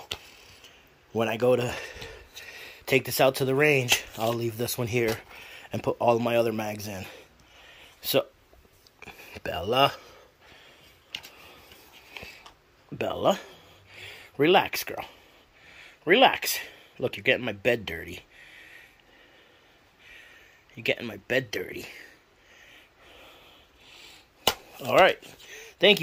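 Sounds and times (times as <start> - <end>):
faint rustling of packaging: 0.0 - 13.9
person speaking: 1.1 - 7.3, 9.0 - 10.2, 12.8 - 13.6, 24.6 - 26.0.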